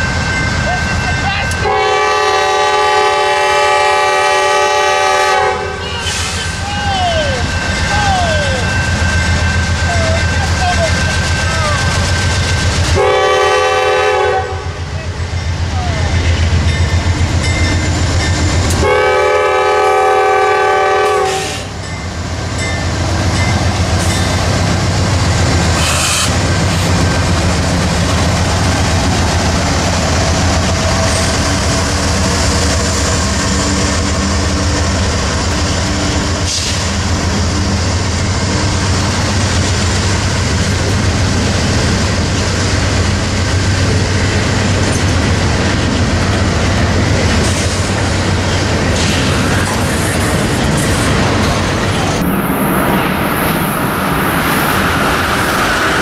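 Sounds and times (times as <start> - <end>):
train rolling: 0.0 - 56.0
diesel locomotive air horn: 1.5 - 6.5, 13.0 - 14.8, 18.7 - 21.7, 25.8 - 26.4.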